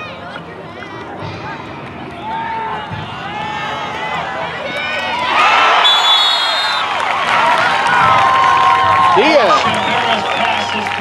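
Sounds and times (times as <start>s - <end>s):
crowd shouting and cheering: 0.0s - 11.0s
shrill whistle: 5.7s - 6.9s.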